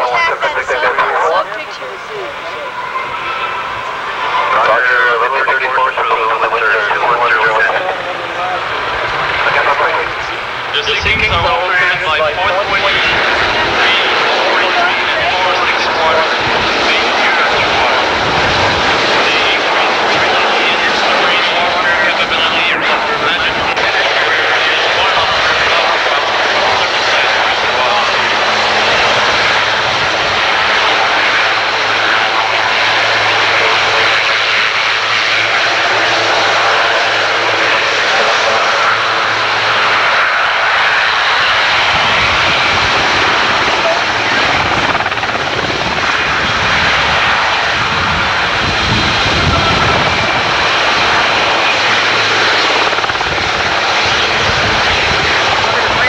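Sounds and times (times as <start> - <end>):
helicopter engines and rotors: 0.0 - 56.0.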